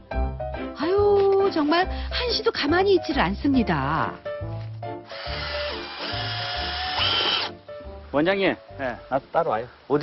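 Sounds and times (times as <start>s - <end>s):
cordless drill whirring: 5.1s - 7.5s.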